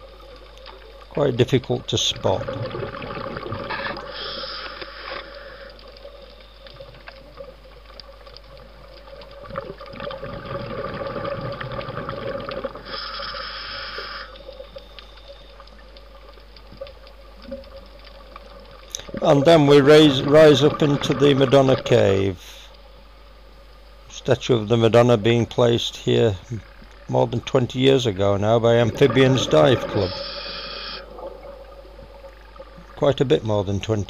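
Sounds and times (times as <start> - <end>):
faint hum: 0.0 - 34.0
underwater water noise: 0.0 - 34.0
regulator breath hiss: 4.0 - 5.9, 12.8 - 14.5, 30.0 - 31.1.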